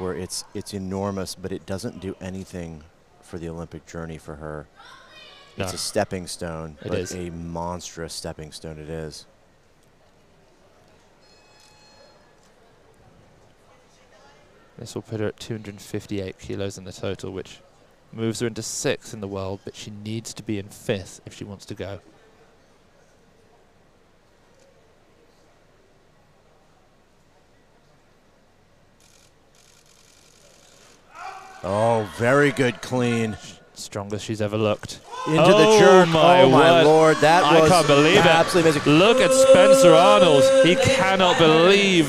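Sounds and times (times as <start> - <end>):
low murmur of hall ambience: 0.0 - 42.0.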